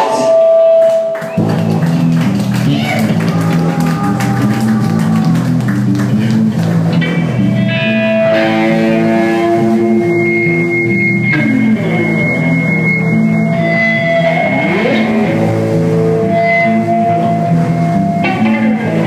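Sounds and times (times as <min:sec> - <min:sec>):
electric guitar and bass band music: 0:00.5 - 0:19.0.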